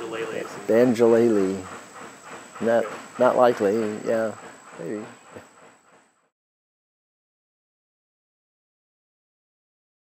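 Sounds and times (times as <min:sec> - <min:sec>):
man speaking: 0:00.0 - 0:01.7, 0:02.6 - 0:05.2.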